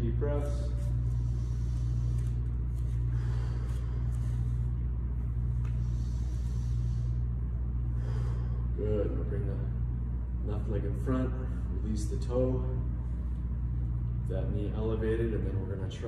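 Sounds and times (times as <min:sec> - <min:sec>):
man breathing deeply: 0:00.0 - 0:09.1
low room hum: 0:00.0 - 0:16.0.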